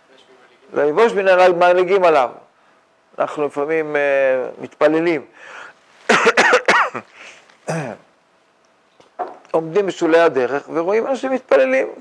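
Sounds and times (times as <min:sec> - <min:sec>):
man coughing: 0:06.1 - 0:08.1.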